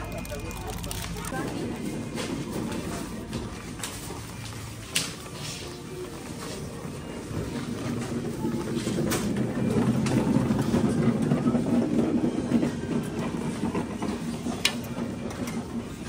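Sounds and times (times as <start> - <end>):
supermarket background noise: 0.0 - 16.0.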